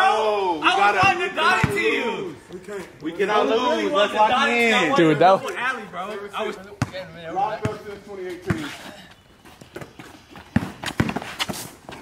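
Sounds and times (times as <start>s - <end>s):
basketball bouncing on concrete: 6.8s - 8.7s, 9.7s - 11.6s
sneakers scuffing: 7.6s - 12.0s.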